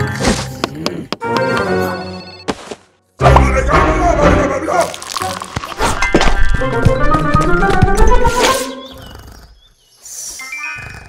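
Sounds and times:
cartoon soundtrack music: 0.0 - 2.5, 3.1 - 9.1.

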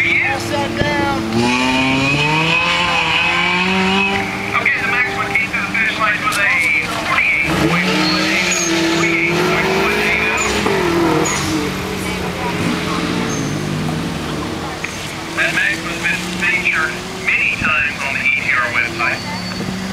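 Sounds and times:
car engine revving: 0.0 - 19.9
tyres squealing: 0.0 - 19.9.

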